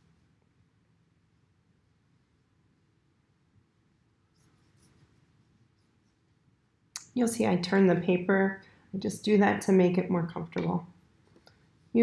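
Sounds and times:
paintbrush brushing on paper: 0:04.3 - 0:06.5.

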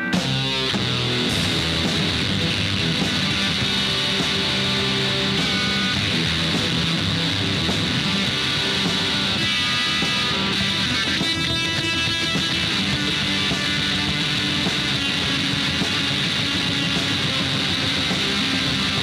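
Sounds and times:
rock band with distorted guitar: 0:00.0 - 0:19.0.

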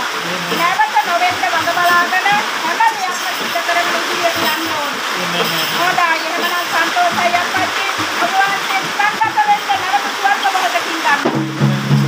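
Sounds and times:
background hiss: 0:00.0 - 0:12.0
woman speaking rapidly: 0:00.5 - 0:11.3.

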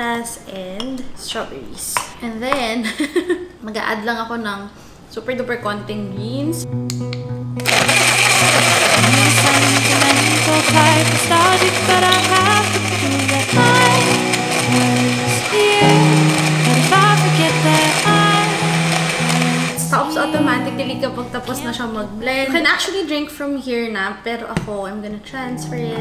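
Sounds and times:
background music: 0:05.7 - 0:22.6, 0:25.2 - 0:26.0
portable blender running: 0:07.6 - 0:20.0.

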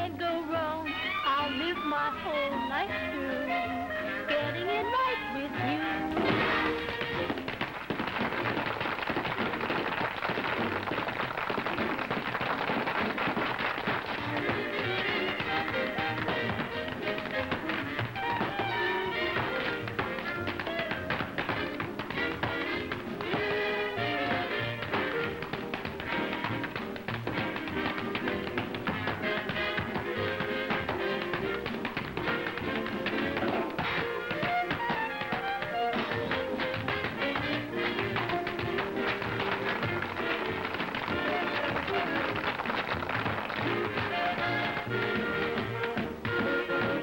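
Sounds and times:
tap shoes on stage floor: 0:00.4 - 0:47.0
small band playing swing: 0:01.3 - 0:47.0.

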